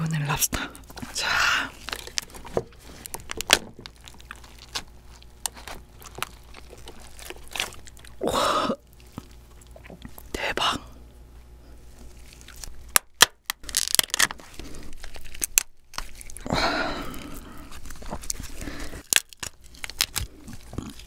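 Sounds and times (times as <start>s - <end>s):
lobster shell cracking: 0.6s - 8.2s, 12.1s - 21.0s.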